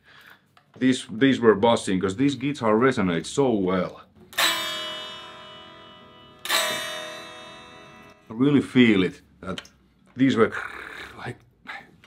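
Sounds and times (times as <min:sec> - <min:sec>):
electric guitar chord ringing: 0:04.3 - 0:08.4.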